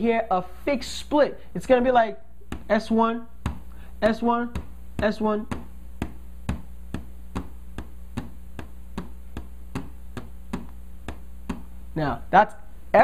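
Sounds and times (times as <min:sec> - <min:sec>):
low electrical hum: 0:00.0 - 0:13.0.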